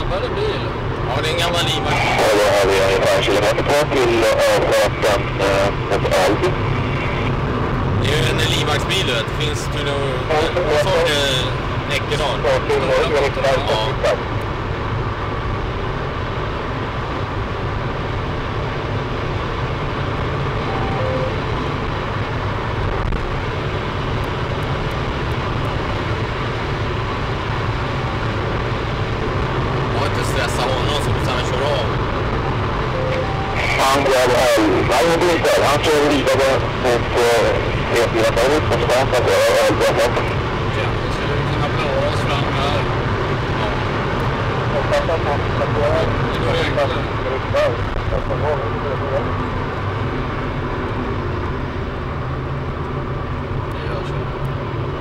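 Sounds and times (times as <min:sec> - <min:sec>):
voices: 0:00.0 - 0:07.3, 0:08.0 - 0:14.3, 0:29.8 - 0:49.8, 0:53.7 - 0:54.5
car engine tyre and wind noise: 0:00.0 - 0:55.0.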